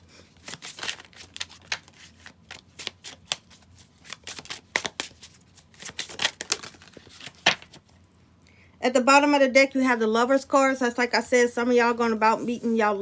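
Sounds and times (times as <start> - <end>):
cards being shuffled: 0.2 - 8.0.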